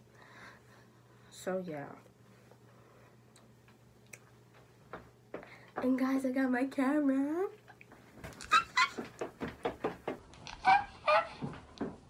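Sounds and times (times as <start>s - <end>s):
woman squealing excitedly: 8.4s - 9.0s.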